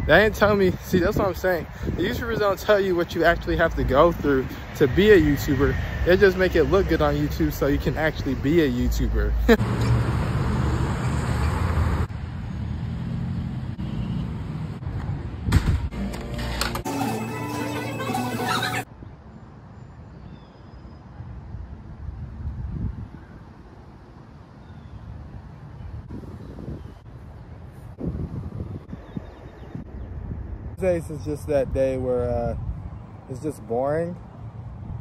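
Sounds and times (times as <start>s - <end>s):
wind buffeting microphone: 0.0s - 5.7s, 21.5s - 23.6s, 25.1s - 33.3s
cars passing: 1.6s - 18.9s.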